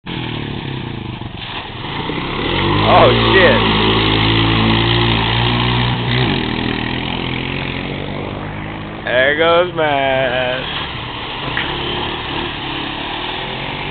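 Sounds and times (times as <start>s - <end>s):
dirt bike engine revving: 1.8s - 13.9s.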